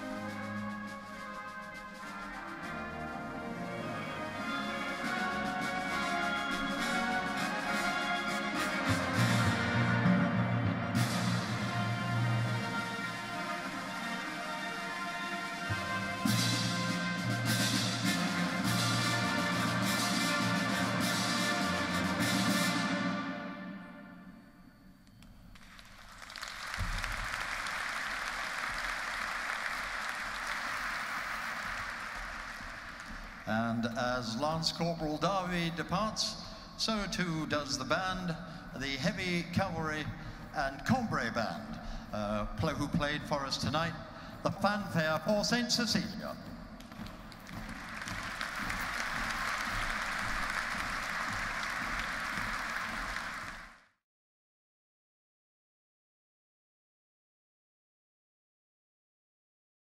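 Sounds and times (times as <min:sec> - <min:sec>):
brass band fanfare chord: 0:00.0 - 0:24.1
audience applauding: 0:25.5 - 0:34.0, 0:46.8 - 0:54.0.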